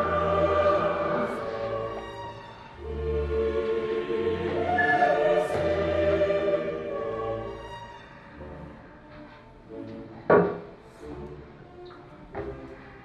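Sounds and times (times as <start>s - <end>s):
dramatic choral music: 0.0s - 13.0s.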